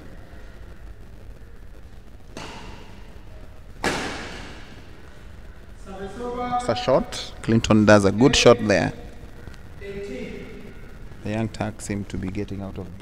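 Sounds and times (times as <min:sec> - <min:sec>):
hall background noise: 0:00.0 - 0:13.0
racket hitting shuttlecock: 0:02.3 - 0:03.1, 0:03.8 - 0:04.7.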